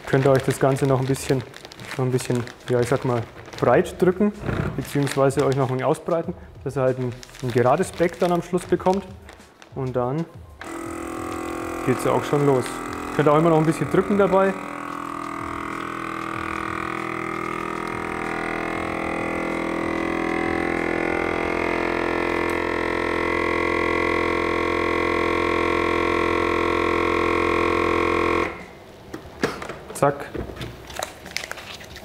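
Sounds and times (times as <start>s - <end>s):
vacuum sealer pump humming: 10.4s - 29.4s.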